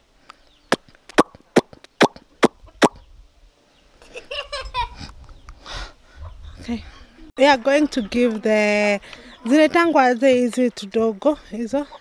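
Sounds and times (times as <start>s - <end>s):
chickens vocalizing: 0.4s - 10.0s, 11.3s - 12.0s.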